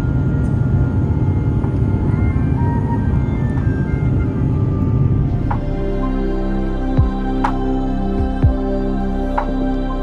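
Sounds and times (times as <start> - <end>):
jet cabin rumble: 0.0 - 10.0
soft background music: 0.0 - 10.0.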